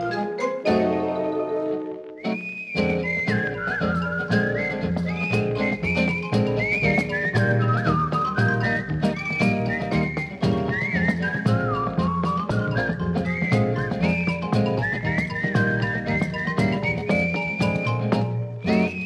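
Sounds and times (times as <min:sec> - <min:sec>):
band with bass and percussion: 0:00.0 - 0:19.0
whistled melody: 0:00.0 - 0:19.0.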